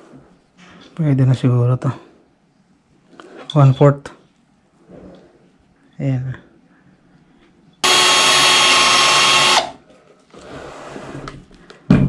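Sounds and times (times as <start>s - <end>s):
cordless drill boring into wood: 7.8s - 9.8s.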